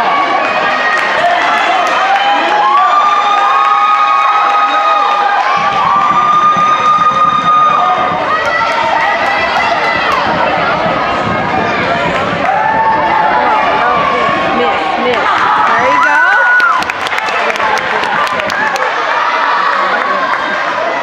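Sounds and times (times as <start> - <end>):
gym crowd noise: 0.0 - 21.0
low crowd rumble: 2.8 - 21.0.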